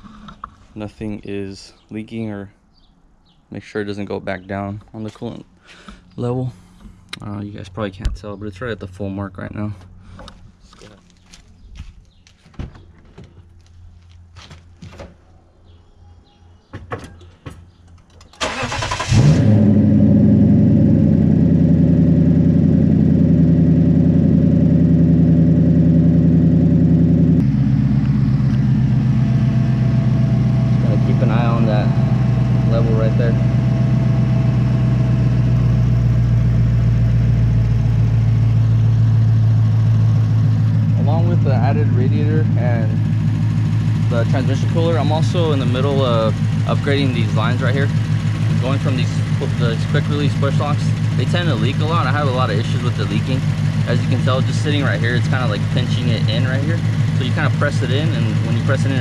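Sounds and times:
car engine starting and idling: 17.7s - 59.0s.

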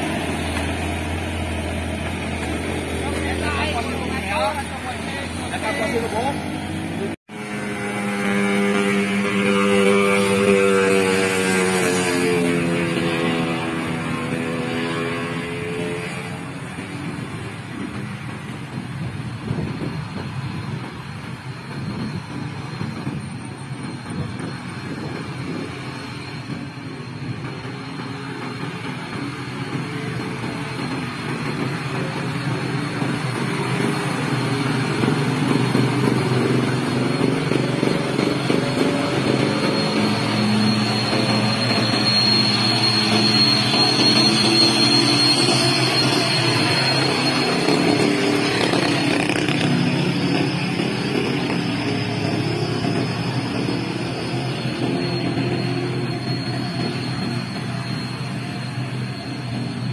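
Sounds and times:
truck diesel engine climbing: 0.0s - 59.9s
uphill traffic: 0.0s - 59.9s
thin high whine: 19.4s - 59.9s.

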